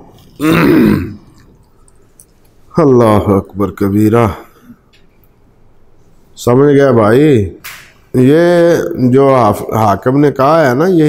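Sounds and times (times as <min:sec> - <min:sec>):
man clearing his throat: 0:00.4 - 0:01.3.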